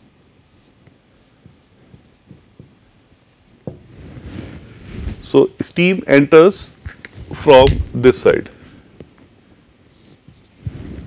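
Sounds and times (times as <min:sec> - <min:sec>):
marker scratching on whiteboard: 0:00.0 - 0:03.8, 0:09.9 - 0:10.6.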